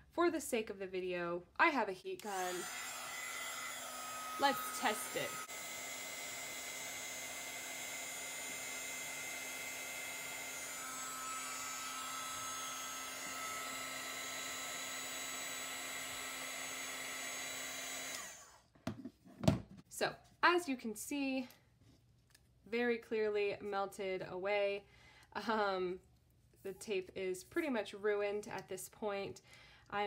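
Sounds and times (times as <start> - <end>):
heat tool fan whirring: 2.2 - 18.6.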